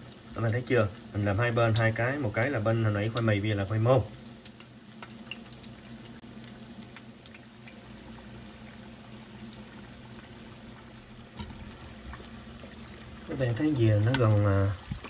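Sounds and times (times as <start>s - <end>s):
oil sizzling and bubbling: 0.0s - 15.0s.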